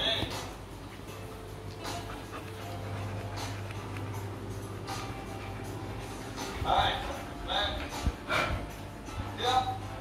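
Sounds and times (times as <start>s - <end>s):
dog breathing: 0.6s - 9.4s.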